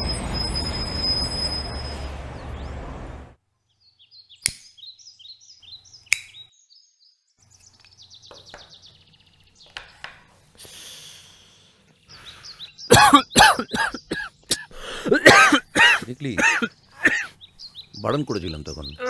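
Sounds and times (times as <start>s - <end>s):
small birds chirping: 3.5s - 19.0s
sharp clicks: 6.1s - 6.4s
man coughing loudly: 12.9s - 17.4s.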